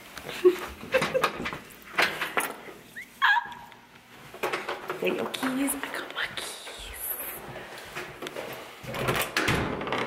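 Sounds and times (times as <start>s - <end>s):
woman laughing quietly: 0.2s - 1.5s.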